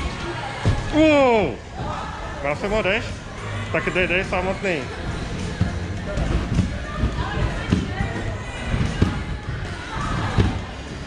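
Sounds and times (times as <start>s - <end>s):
background chatter: 0.0s - 11.0s
thuds of feet on trampoline: 5.2s - 10.7s.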